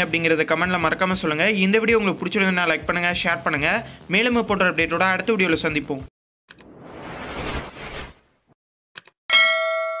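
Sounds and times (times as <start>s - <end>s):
swoosh: 6.5s - 8.6s
notification bell ding: 9.3s - 10.0s.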